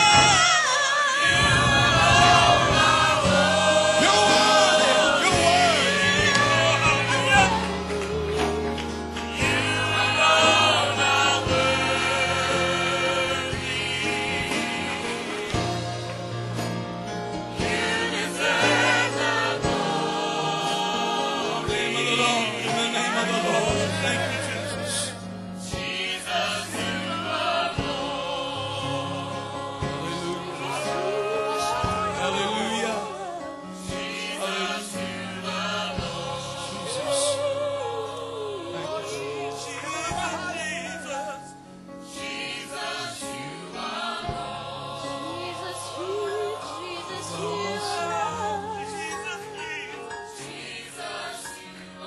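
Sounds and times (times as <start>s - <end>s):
vocal ensemble singing in harmony: 0.0s - 52.0s
low thump: 1.2s - 4.0s.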